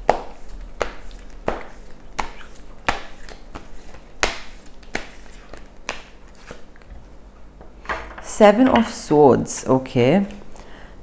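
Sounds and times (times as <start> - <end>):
cards being shuffled: 0.8 - 6.7.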